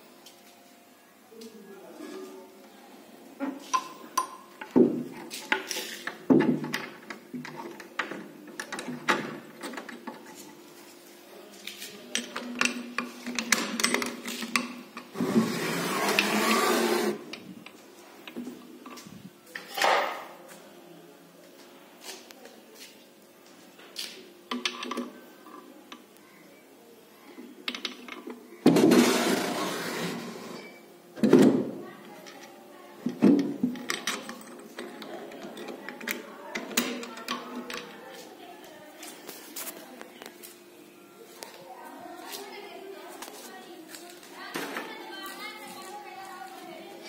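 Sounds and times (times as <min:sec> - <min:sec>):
drawer sliding shut: 0:15.2 - 0:17.2, 0:28.7 - 0:30.6
background voices with children: 0:31.7 - 0:47.0.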